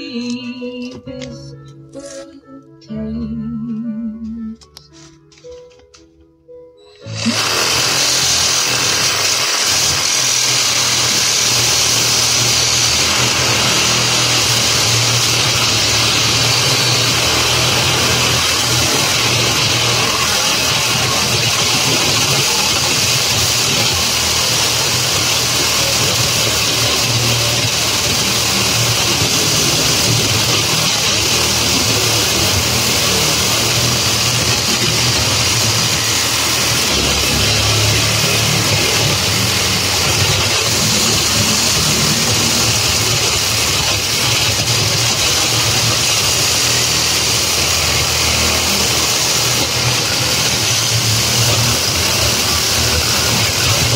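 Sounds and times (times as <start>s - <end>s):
reciprocating saw cutting wire: 7.0s - 53.9s.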